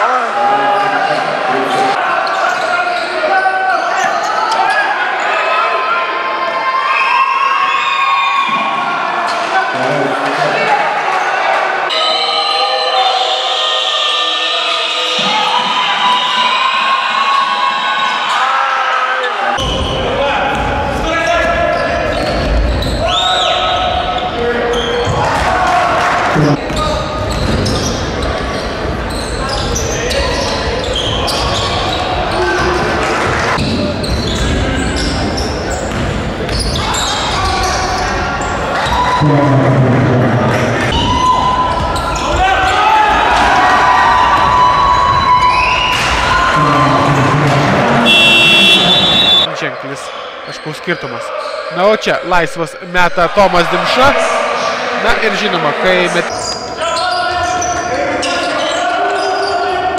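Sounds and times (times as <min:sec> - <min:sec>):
voices of players and spectators: 0:00.0 - 0:59.9.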